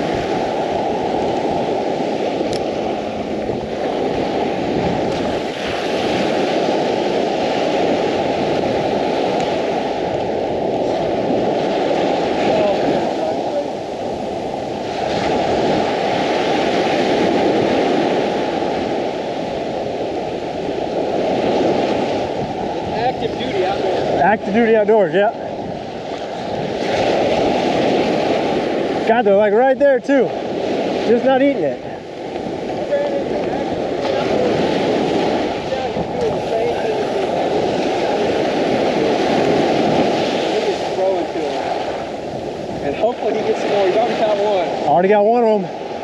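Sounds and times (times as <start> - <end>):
surf breaking on sand: 0.0 - 46.0
wind buffeting microphone: 0.0 - 46.0.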